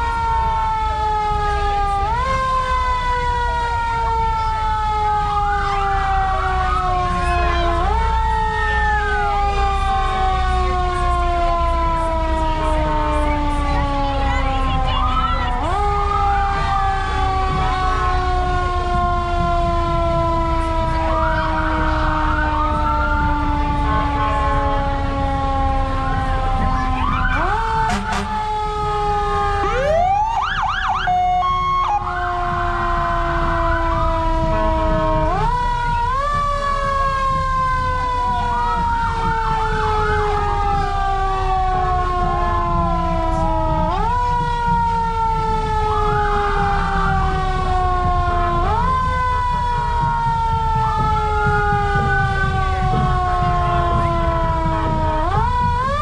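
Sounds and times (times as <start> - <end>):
emergency vehicle siren wailing: 0.0 - 56.0
rising siren wail: 0.0 - 56.0.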